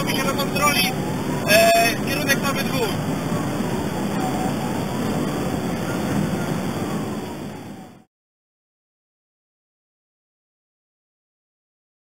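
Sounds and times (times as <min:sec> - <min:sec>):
faint siren wailing: 0:00.0 - 0:08.1
road and engine noise inside car: 0:00.0 - 0:08.1.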